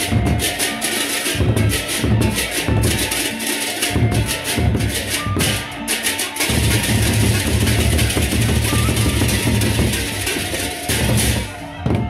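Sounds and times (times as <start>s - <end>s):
deep drumming: 6.5s - 12.0s.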